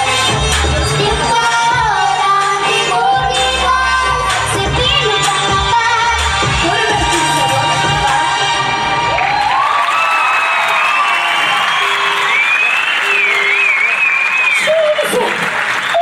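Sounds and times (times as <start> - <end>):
song with a steady beat: 0.0 - 9.0
audience applauding and cheering: 7.0 - 16.0.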